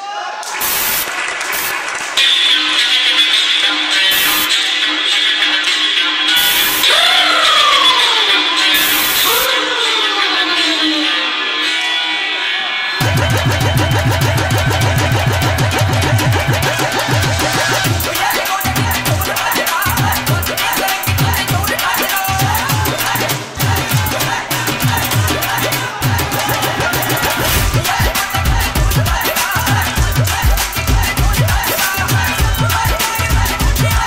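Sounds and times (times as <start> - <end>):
intro music with high held note: 1.6 - 34.0
fast deep drum strokes: 13.0 - 34.0.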